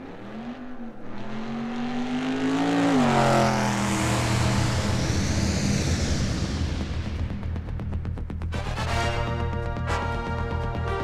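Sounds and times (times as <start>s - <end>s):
engine-like electronic drone: 0.0s - 11.0s
rushing noise: 2.8s - 8.9s.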